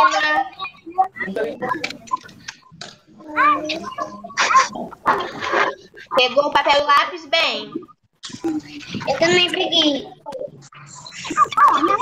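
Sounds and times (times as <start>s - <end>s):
children's voices over video call: 0.0s - 12.0s.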